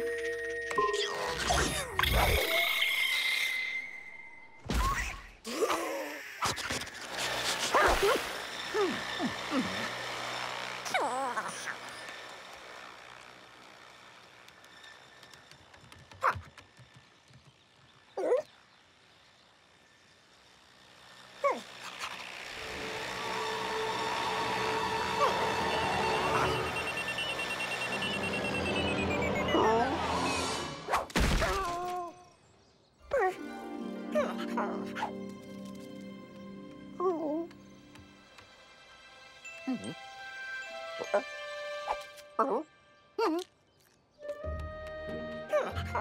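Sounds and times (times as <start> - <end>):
drone propellers buzzing: 6.6 - 30.9.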